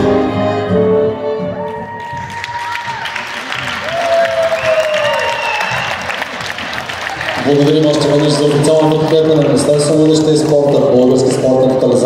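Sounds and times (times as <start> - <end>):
ballroom dance music: 0.0 - 12.0
audience applauding: 1.6 - 12.0.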